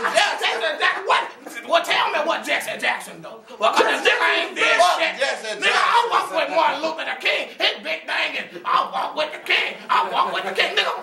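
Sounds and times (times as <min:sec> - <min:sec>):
men shouting and talking: 0:00.0 - 0:11.0.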